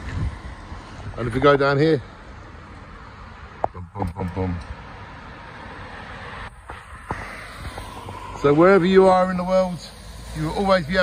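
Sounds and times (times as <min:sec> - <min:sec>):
road traffic hiss: 0:00.0 - 0:11.0.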